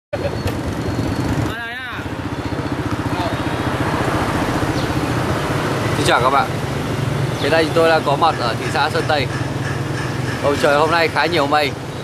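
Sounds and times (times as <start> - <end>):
small motorbike engine running: 0.2 - 5.4.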